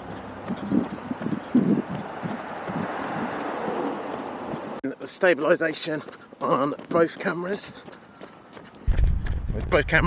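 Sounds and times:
wind buffeting microphone: 0.0s - 4.8s, 8.5s - 10.0s
footsteps thudding: 0.7s - 3.3s, 8.6s - 10.0s.

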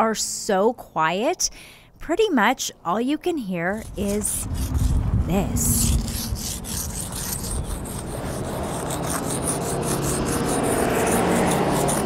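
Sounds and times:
low hum: 3.7s - 10.2s
chalk scraping pavement: 3.7s - 12.0s.

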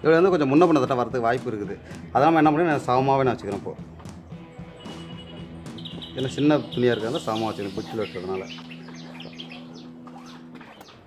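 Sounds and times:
small birds chirping: 3.2s - 11.0s
man speaking: 6.1s - 8.6s.

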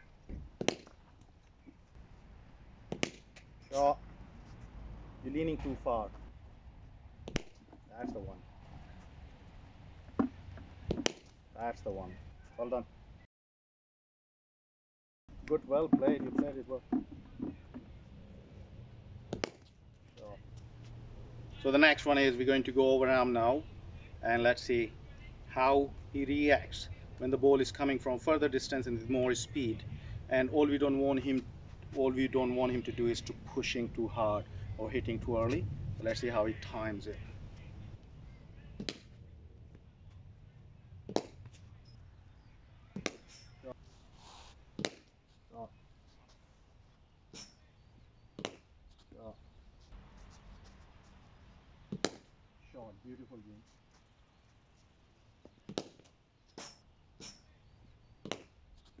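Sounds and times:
cricket bat striking ball: 2.9s - 3.3s.

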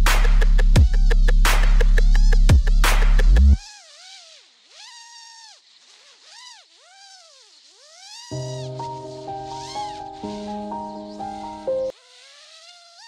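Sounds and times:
music with steady bass line: 0.0s - 3.6s.

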